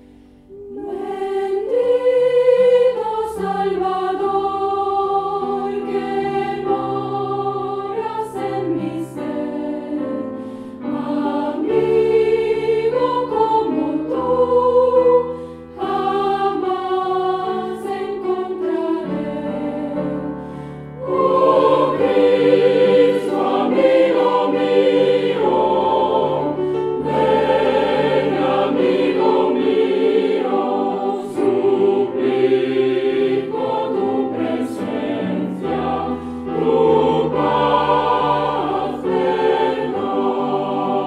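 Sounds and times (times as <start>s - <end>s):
mixed choir singing: 0.0s - 41.0s.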